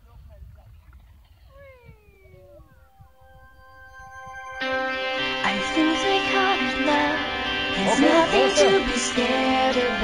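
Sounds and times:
wind rumbling on microphone: 0:00.0 - 0:03.7
steady music tones: 0:02.3 - 0:10.0.

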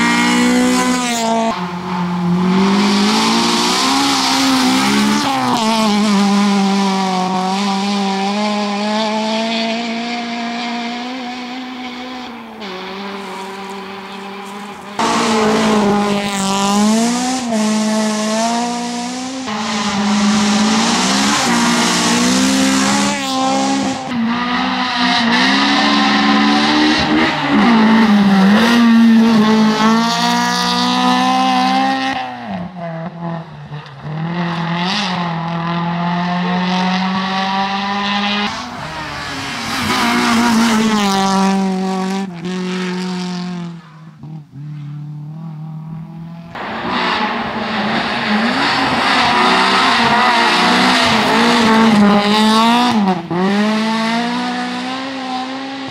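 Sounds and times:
rally car engine revving: 0:00.0 - 0:55.9.

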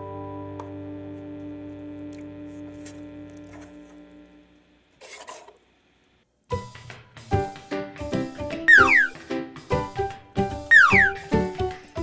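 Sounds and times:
background music: 0:06.5 - 0:12.0.

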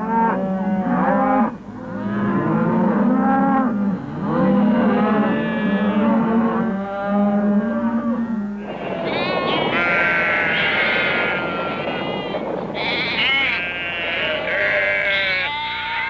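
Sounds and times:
cattle mooing: 0:00.0 - 0:16.0.

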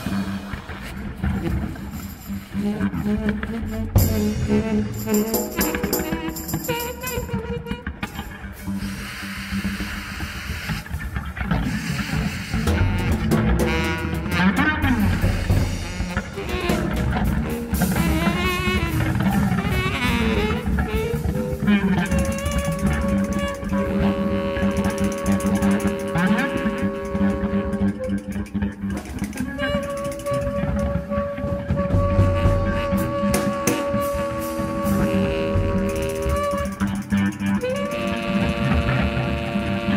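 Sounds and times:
jazz trio playing: 0:00.0 - 0:39.9
saxophone: 0:00.0 - 0:39.9.

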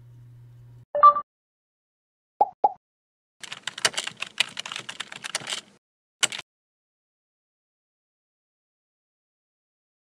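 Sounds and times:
keyboard key clicks: 0:03.4 - 0:06.4.

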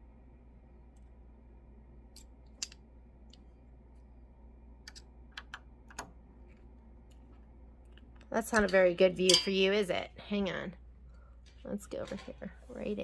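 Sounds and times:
low steady hum: 0:00.0 - 0:13.0.

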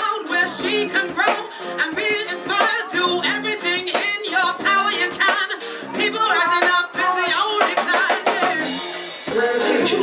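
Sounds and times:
ska band playing: 0:00.0 - 0:10.0
woman singing: 0:00.0 - 0:10.0.

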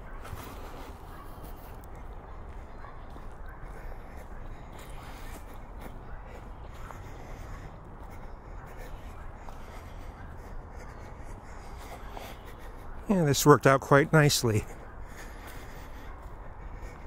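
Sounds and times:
footsteps on dry leaves: 0:00.0 - 0:13.6.

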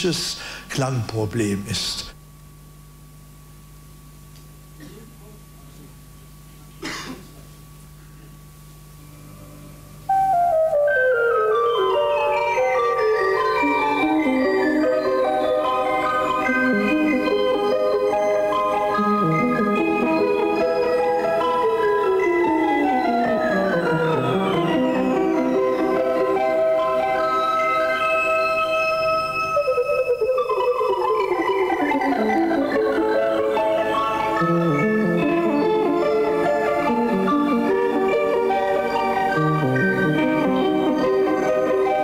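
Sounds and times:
electronic instrument descending lines: 0:10.1 - 0:17.3.

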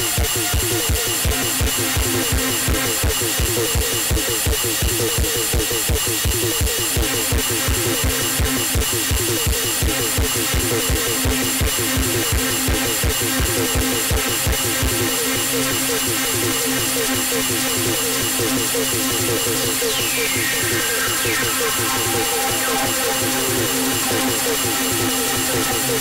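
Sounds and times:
fast repeating synth sequence: 0:00.0 - 0:26.0.

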